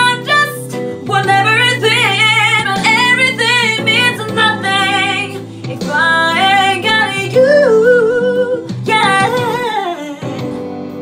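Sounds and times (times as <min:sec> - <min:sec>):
woman singing: 0:00.0 - 0:10.6.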